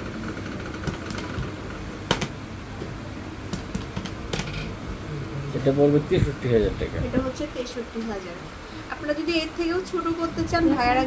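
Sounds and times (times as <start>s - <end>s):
low mechanical room hum: 0.0s - 11.0s.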